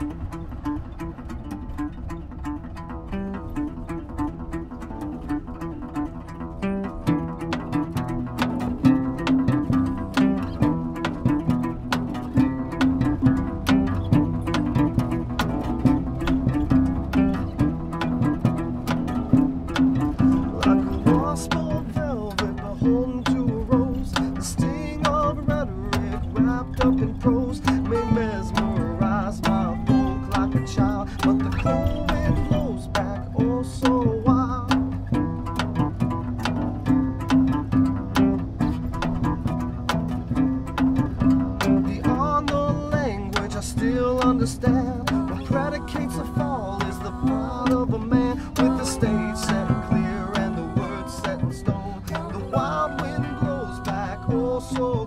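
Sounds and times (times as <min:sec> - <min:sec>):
plucked acoustic guitar: 0:00.0 - 0:55.0
plucked bass line: 0:00.0 - 0:55.0.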